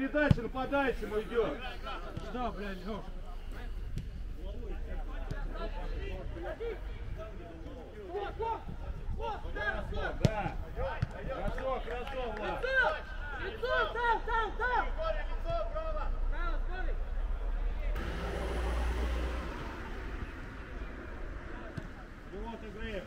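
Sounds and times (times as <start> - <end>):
rush of noise: 18.0 - 23.0.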